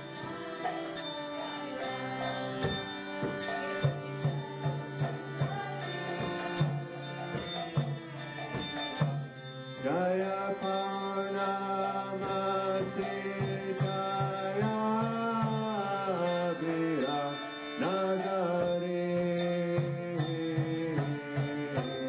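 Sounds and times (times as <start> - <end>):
devotional chanting voice: 0.0 - 22.0.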